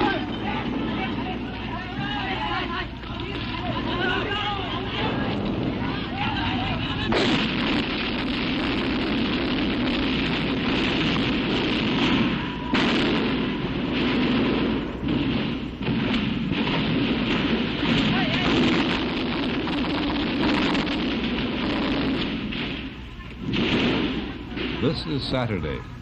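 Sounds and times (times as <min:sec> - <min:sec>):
gunfire: 0:00.0 - 0:25.5
explosions: 0:00.0 - 0:25.6
dense steady din: 0:00.0 - 0:26.0.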